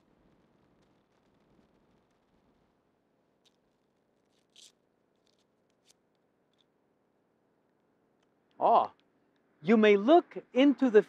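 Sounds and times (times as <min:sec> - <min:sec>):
fortune cookie crackling: 0:03.4 - 0:06.7.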